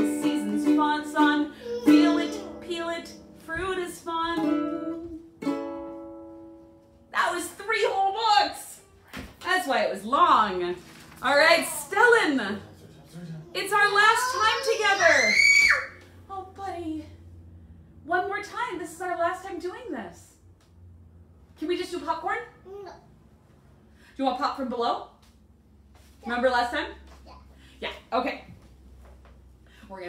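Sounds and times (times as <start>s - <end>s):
ukulele chord ringing: 4.4s - 6.8s
woman speaking: 7.1s - 12.7s, 13.6s - 15.4s, 16.3s - 17.2s, 18.1s - 20.4s, 21.6s - 22.5s, 27.8s - 28.6s
young child squealing: 13.8s - 16.0s.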